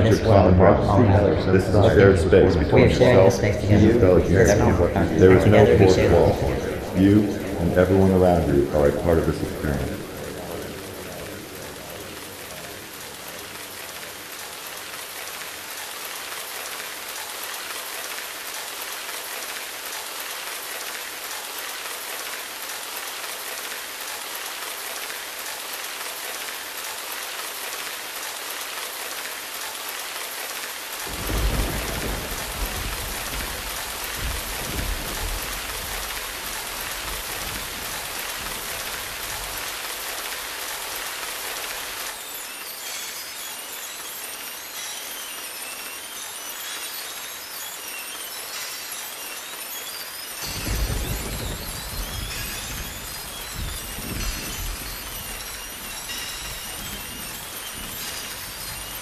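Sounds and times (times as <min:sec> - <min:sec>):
steady rain: 0:00.0 - 0:59.0
low roll of thunder: 0:02.9 - 0:14.2, 0:31.1 - 0:39.7, 0:50.5 - 0:58.5.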